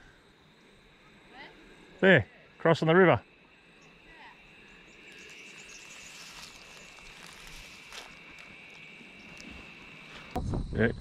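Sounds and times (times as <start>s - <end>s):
insects droning: 0.0s - 11.0s.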